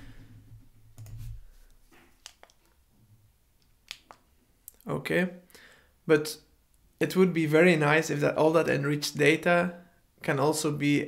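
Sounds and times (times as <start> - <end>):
computer mouse clicking: 1.0 - 1.2.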